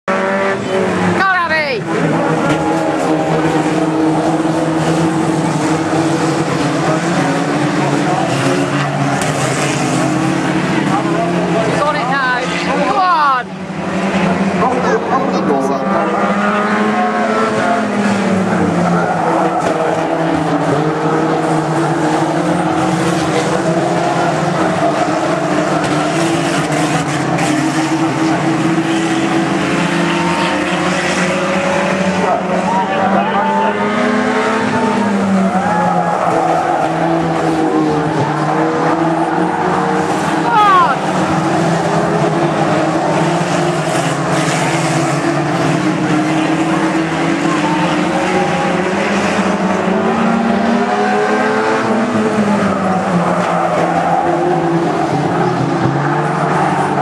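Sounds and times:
racing car engines revving: 0.0s - 57.0s.

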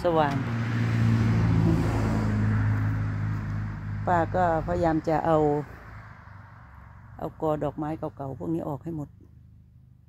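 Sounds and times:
car driving past: 0.0s - 7.2s.

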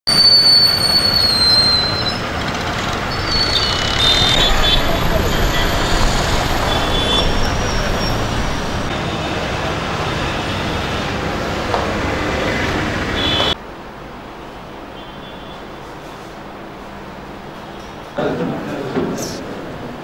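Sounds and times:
traffic rumble and hiss: 0.1s - 20.0s
indistinct voices: 3.0s - 13.2s.

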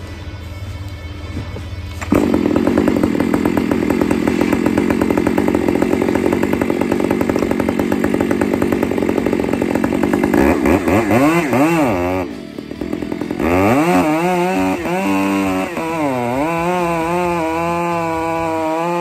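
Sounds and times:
chainsaw cutting wood: 2.0s - 19.0s.

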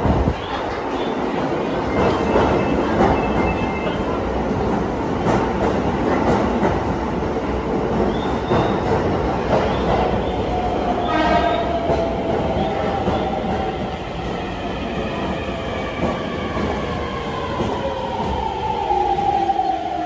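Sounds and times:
subway train rumbling: 0.0s - 20.0s.

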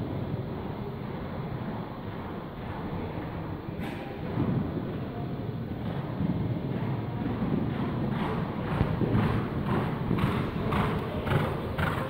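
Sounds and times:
horse hoofbeats on sand: 5.8s - 12.0s.

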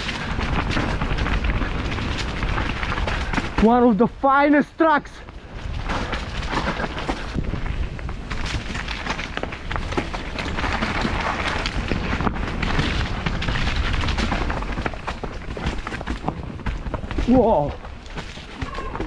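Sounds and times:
wind buffeting microphone: 0.0s - 4.2s, 4.9s - 19.0s
bike rattling: 0.0s - 19.0s
bike tyres crunching over stones: 0.0s - 19.0s.

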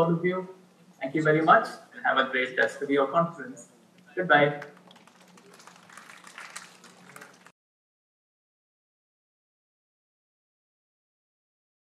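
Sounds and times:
steady low hum: 0.0s - 7.5s.

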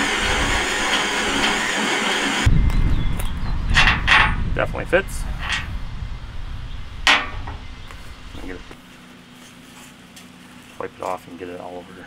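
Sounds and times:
low steady hum: 2.4s - 12.0s
sharp metallic clank: 7.0s - 7.7s.

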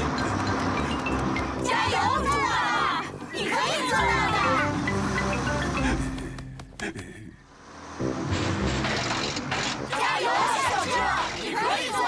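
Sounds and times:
cartoon bus engine running: 0.0s - 12.0s.

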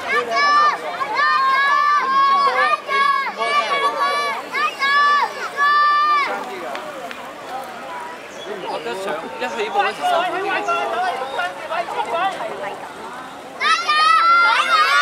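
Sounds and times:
spectators cheering: 0.0s - 6.6s, 13.6s - 15.0s.

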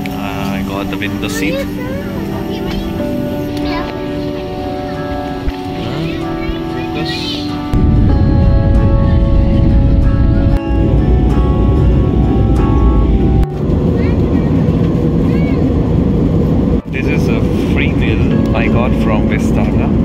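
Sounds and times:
faint voices: 0.0s - 7.8s, 13.5s - 20.0s
airliner cabin roar: 0.0s - 20.0s
steady held tones: 0.0s - 20.0s.

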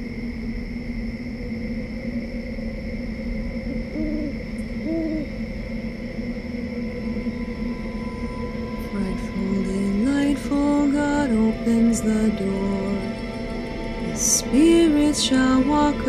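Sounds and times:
steady drone: 0.0s - 16.0s
owl hoots: 3.6s - 5.5s.

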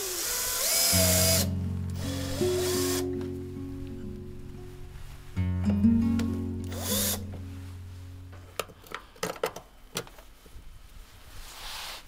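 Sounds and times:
cordless drill whirring: 0.0s - 3.0s, 6.7s - 7.2s
background music: 0.9s - 8.5s.

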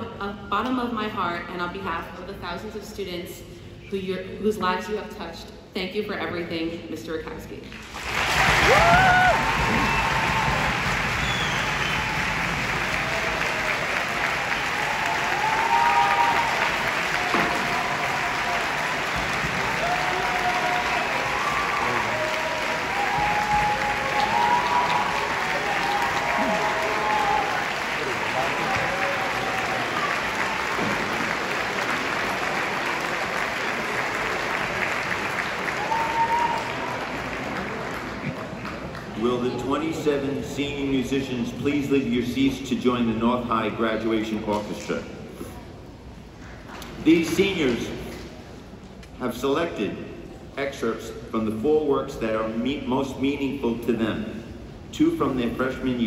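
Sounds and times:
audience applauding: 7.8s - 39.5s.

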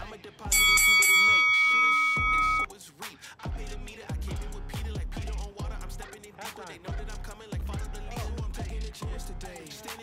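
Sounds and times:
long high timer beep: 0.5s - 2.7s.

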